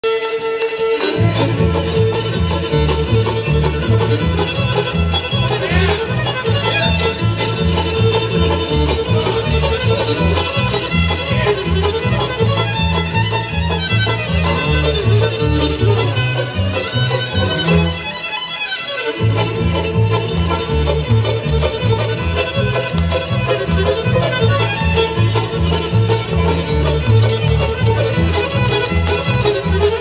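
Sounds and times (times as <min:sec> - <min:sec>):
bluegrass band instrumental: 0:00.0 - 0:30.0
fiddle bowed notes: 0:00.0 - 0:30.0
upright bass line: 0:01.1 - 0:18.0, 0:19.2 - 0:30.0.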